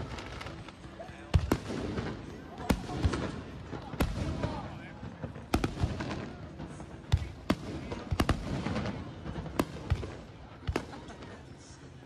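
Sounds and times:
fireworks bangs: 0:00.0 - 0:11.4.

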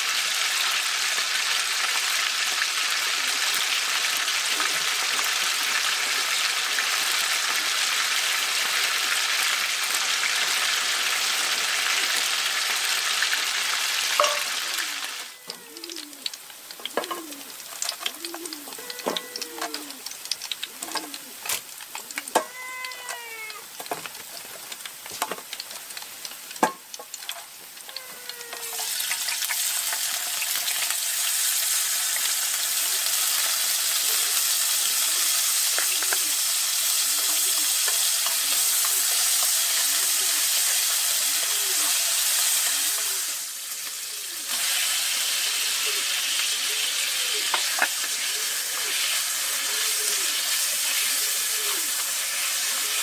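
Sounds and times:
garlic sizzling in hot oil: 0:00.0 - 0:53.0.

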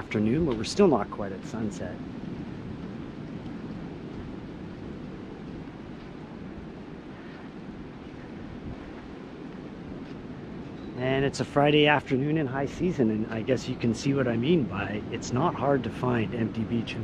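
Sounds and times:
ocean surf: 0:00.0 - 0:17.0
wind on microphone: 0:00.0 - 0:17.0.

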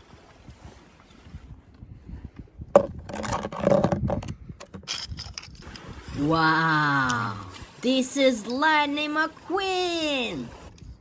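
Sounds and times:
toy car scraping on rock: 0:07.0 - 0:11.0.

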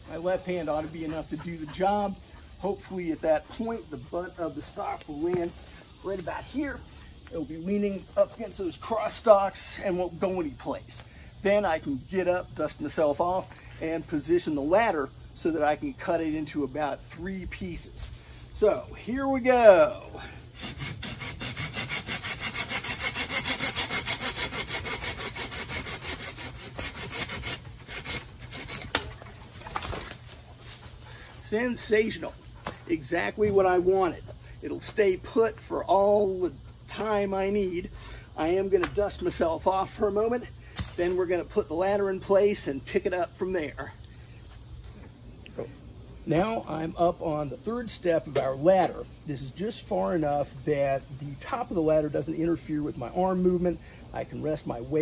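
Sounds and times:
steady low hum: 0:00.0 - 0:55.0
man speaking: 0:00.1 - 0:10.9, 0:31.4 - 0:44.0
saw cutting bamboo: 0:00.1 - 0:11.0, 0:20.5 - 0:31.0.

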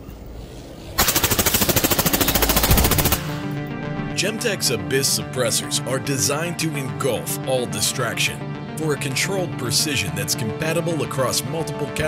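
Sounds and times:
suppressed automatic rifle burst: 0:01.0 - 0:03.5.

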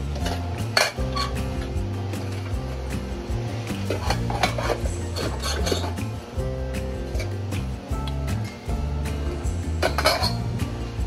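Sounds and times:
background music: 0:00.0 - 0:11.0
steel lids clinking on griddle: 0:00.1 - 0:01.6, 0:03.9 - 0:06.0, 0:09.8 - 0:10.5.

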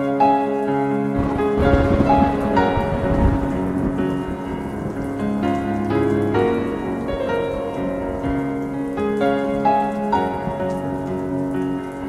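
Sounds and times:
rain-like patter: 0:00.0 - 0:12.0
slow piano music: 0:00.0 - 0:12.0.

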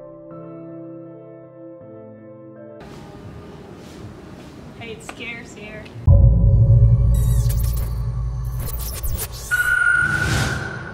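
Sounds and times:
deep bass: 0:06.1 - 0:09.3
high ringing tone: 0:06.1 - 0:10.9.

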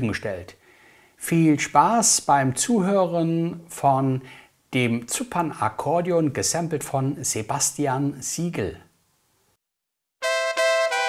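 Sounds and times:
keyboard playing accordion chords: 0:10.2 - 0:11.0.

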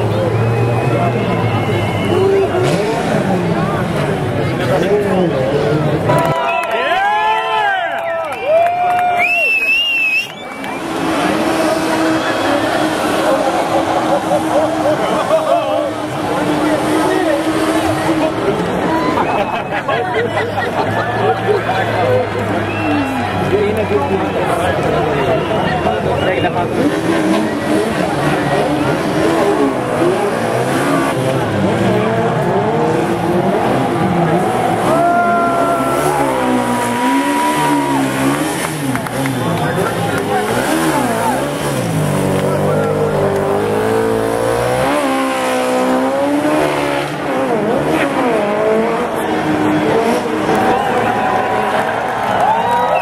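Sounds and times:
race car engines revving: 0:00.0 - 0:53.0.

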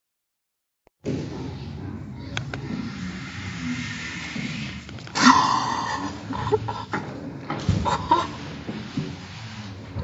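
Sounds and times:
boys laughing: 0:05.2 - 0:07.1, 0:07.7 - 0:08.6.

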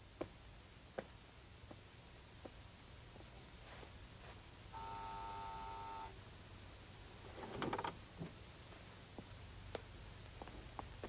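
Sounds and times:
electric desk buzzer: 0:04.8 - 0:06.2.

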